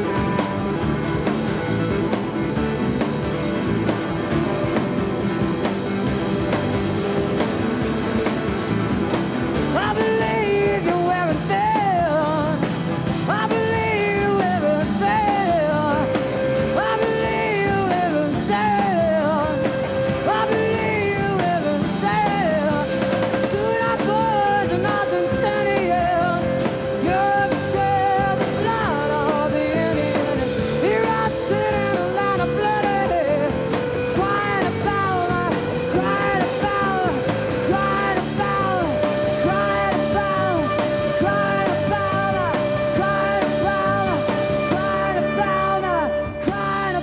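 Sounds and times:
lead guitar melodic runs: 0.0 - 47.0.

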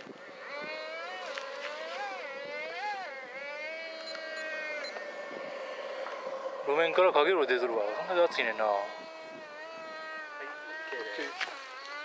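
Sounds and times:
model jet engine whining: 0.0 - 12.0.

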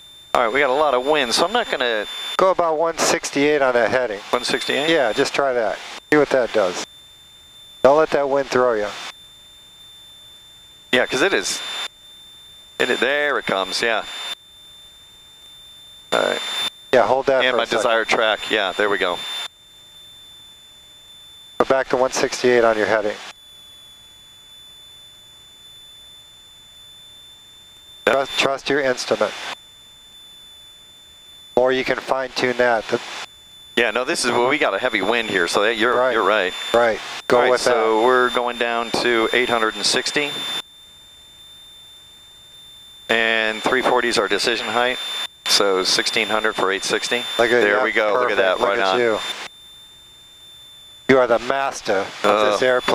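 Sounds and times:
high-pitched electrical whine: 0.0 - 52.9
steady high-pitched tone: 0.0 - 52.9
man's voice over intercom: 46.6 - 49.2, 51.2 - 52.9.

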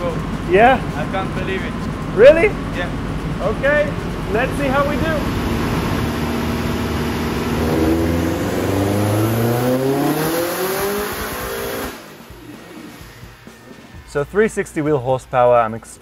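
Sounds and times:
car engine revving at full throttle: 0.0 - 13.2.

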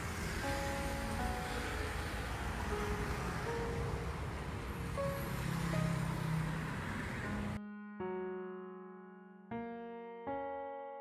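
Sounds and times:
passing cars rumbling: 0.0 - 7.6.

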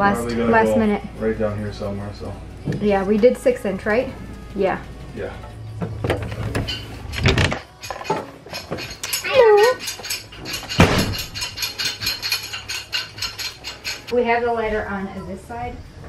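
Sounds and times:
rapid clicks and knocks: 6.0 - 14.1.

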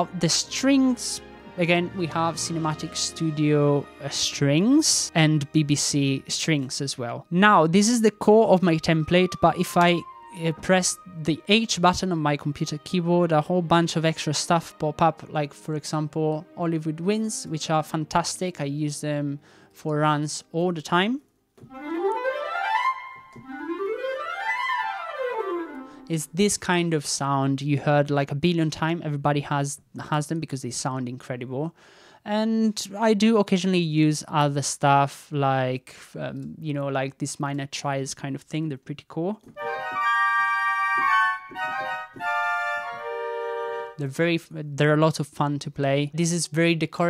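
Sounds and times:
orchestral sustained chords: 0.0 - 6.7
orchestral woodwind runs: 21.7 - 25.9, 39.6 - 44.0.

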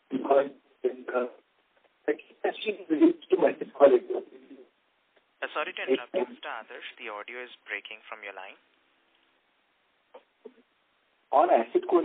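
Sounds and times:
voices over phone line: 5.4 - 8.6.

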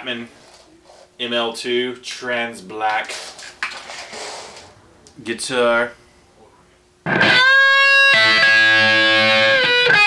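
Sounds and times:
clothing rustling: 3.1 - 4.8.

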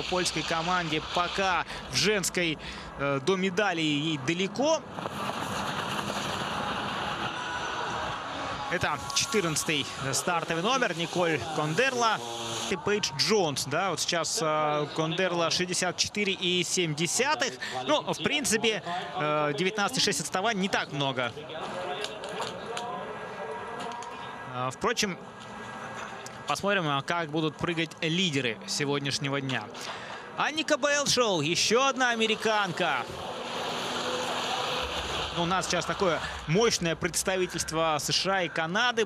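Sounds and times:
skis gliding over snow: 5.0 - 7.4.

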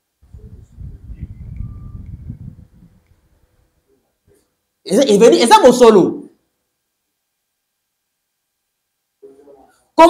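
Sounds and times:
faint thin tone: 0.4 - 3.0.

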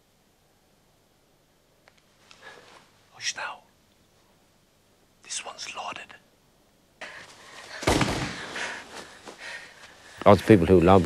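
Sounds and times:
person whispering: 3.1 - 3.8, 5.2 - 6.3
loud bang: 7.8 - 8.6.

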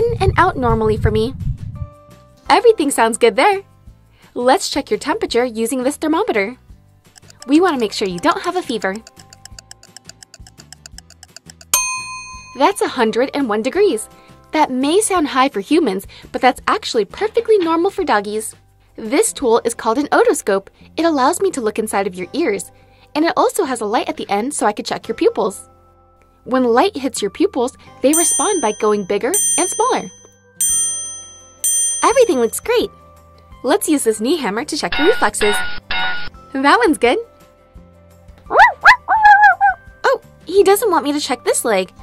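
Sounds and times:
background music: 1.9 - 42.0
rapid electronic ticking: 7.2 - 11.8
bell-like chime dings: 11.1 - 13.2, 28.2 - 32.8
bright electronic ding: 11.2 - 13.0.

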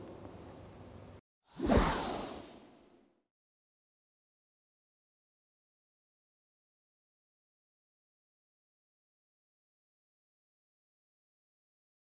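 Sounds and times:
whoosh sound effect: 1.5 - 2.8.

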